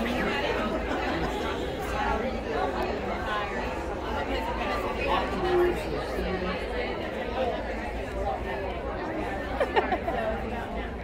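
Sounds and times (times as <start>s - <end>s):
crowd chatter in a hall: 0.0s - 11.0s.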